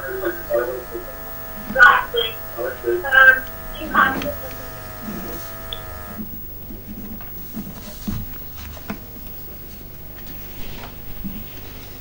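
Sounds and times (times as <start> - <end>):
faint indistinct voices: 0.0 - 6.1
telephone line electrical buzz: 0.0 - 12.0.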